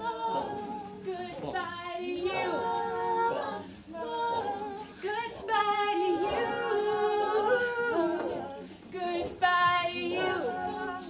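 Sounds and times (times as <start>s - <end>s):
wordless a cappella singing: 0.0s - 11.0s.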